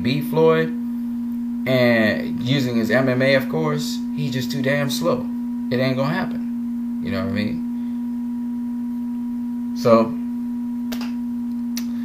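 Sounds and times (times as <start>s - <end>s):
steady low electronic tone: 0.0s - 12.0s.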